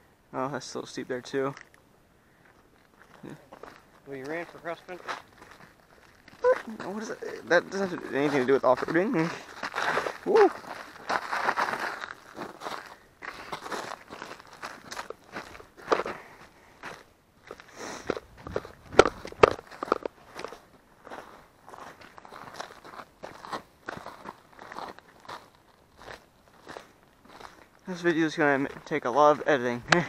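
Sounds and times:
footsteps crunching on dry ground: 2.4s - 30.0s.

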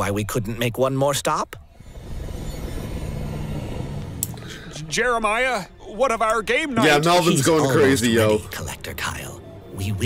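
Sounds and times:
faint low hum: 1.6s - 6.4s
steady low rumble: 1.6s - 6.8s.

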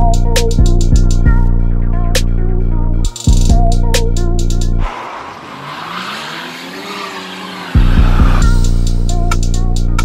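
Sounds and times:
hip-hop bass and drums: 0.0s - 4.9s, 7.6s - 10.0s.

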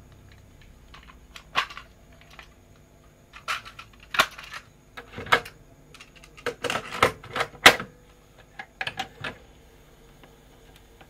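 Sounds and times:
cassette clicking and rattling: 0.3s - 2.6s, 3.3s - 9.4s.

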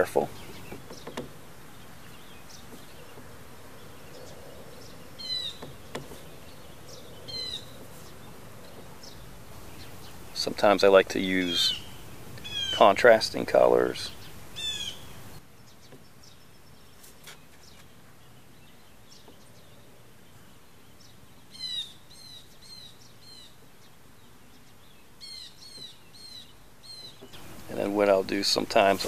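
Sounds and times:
small bird chirping: 0.0s - 10.5s, 11.3s - 13.0s, 13.8s - 29.0s
faint background hiss: 0.0s - 29.0s.

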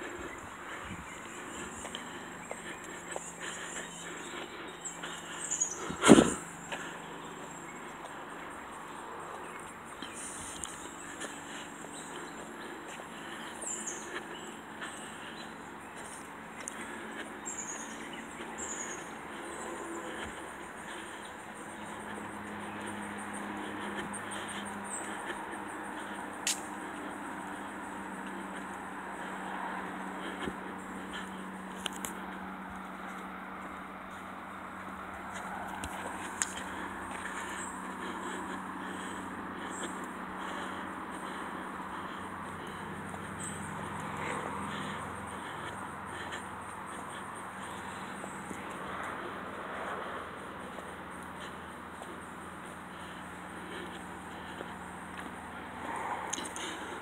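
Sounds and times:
pulsing insect trill: 0.0s - 12.4s.

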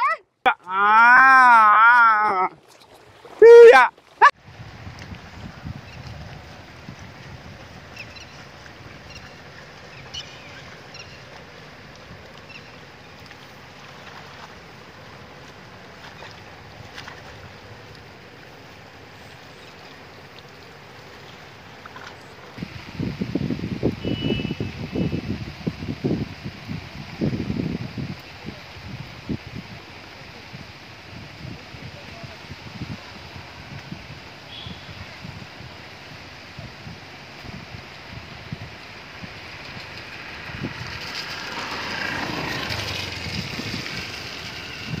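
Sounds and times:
rain hissing on water: 0.0s - 45.0s
wind buffeting microphone: 4.2s - 17.8s, 22.4s - 45.0s
wind thumps on microphone: 4.4s - 8.0s.

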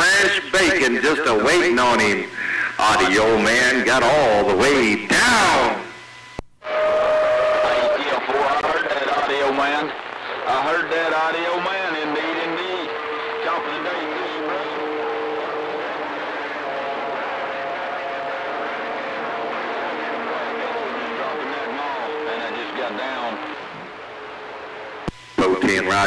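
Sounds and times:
faint garbled radio voices: 0.0s - 26.0s
radio static hiss: 0.0s - 26.0s.

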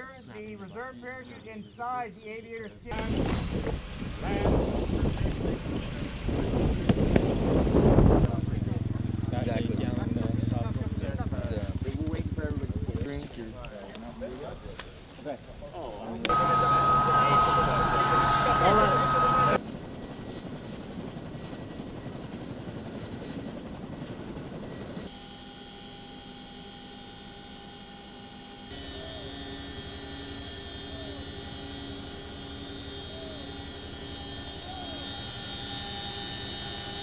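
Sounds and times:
helicopter engine and rotor drone: 2.9s - 14.8s, 16.2s - 37.0s
high whine: 16.3s - 19.6s.

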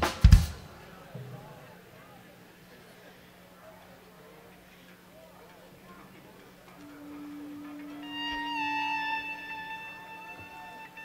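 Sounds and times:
live band long held notes: 0.0s - 0.9s, 6.0s - 11.0s.

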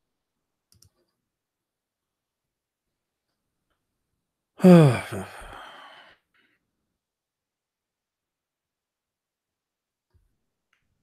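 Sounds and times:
man sighing: 4.6s - 6.2s.

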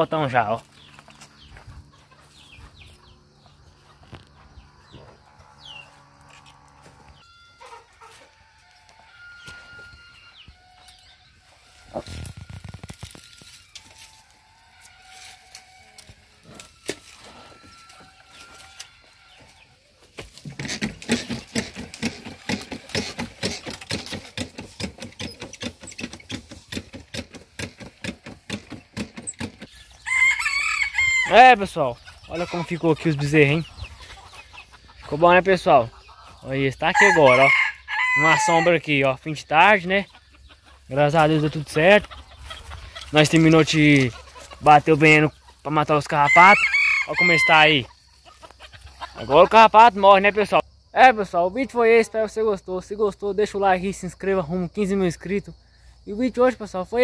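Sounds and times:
chickens clucking: 0.1s - 50.6s.

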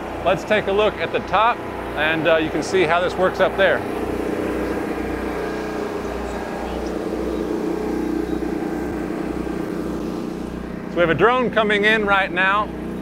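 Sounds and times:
drone rotors humming: 0.0s - 13.0s.

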